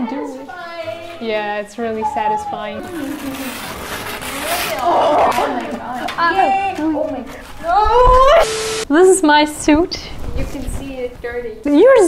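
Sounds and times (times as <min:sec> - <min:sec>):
masking tape peeling off wall: 0:02.8 - 0:08.3.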